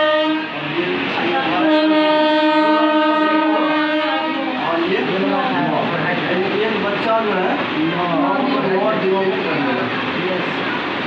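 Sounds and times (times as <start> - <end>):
horn blasts: 0.0 - 0.7, 1.4 - 5.0.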